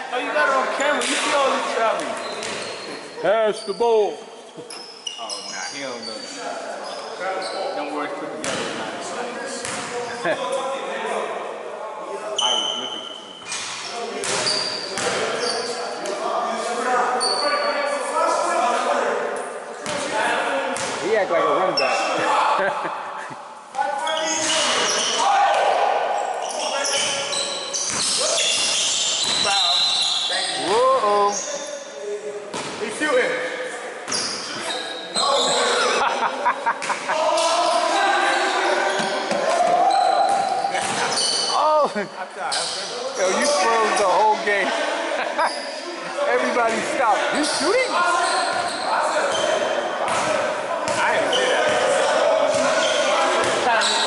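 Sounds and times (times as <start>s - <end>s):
players' voices: 0.0s - 54.0s
shoe squeaks: 0.8s - 8.6s, 12.3s - 16.0s, 17.1s - 18.0s, 21.7s - 22.2s, 24.0s - 25.3s, 26.2s - 31.9s, 34.1s - 36.0s, 37.4s - 41.8s, 42.5s - 44.4s, 45.4s - 45.8s, 47.3s - 49.8s, 50.8s - 51.9s, 52.5s - 54.0s.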